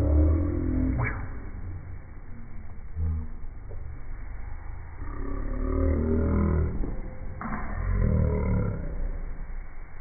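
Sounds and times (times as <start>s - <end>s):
person growling: 5.0s - 6.8s.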